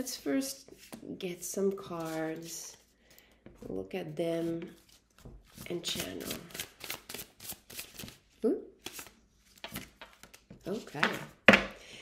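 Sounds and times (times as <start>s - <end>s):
cards being shuffled and dealt: 0.1s - 3.6s, 4.4s - 11.7s.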